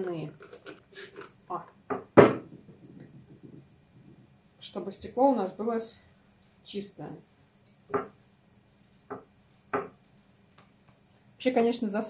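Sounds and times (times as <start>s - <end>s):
spray bottle spritz: 0.9s - 1.2s
bottle knocking on wooden bench: 1.9s - 3.6s, 7.9s - 8.2s, 9.1s - 10.0s.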